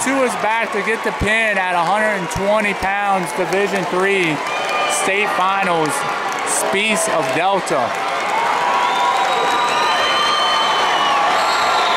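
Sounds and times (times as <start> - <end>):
crowd cheering and applauding: 0.0 - 11.9.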